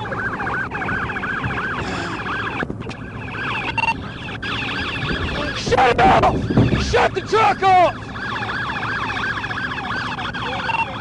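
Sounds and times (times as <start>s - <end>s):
police sirens yelping: 0.0s - 11.0s.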